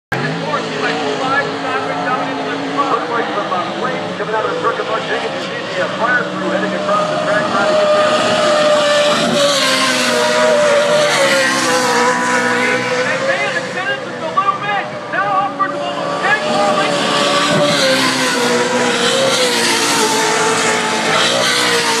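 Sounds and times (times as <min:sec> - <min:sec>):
race truck engines droning: 0:00.1 - 0:22.0.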